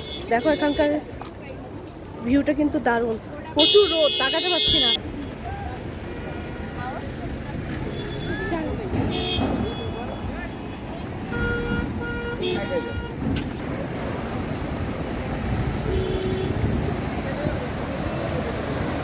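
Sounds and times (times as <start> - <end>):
roadside traffic: 0.0 - 19.0
people talking: 0.3 - 11.3, 16.8 - 19.0.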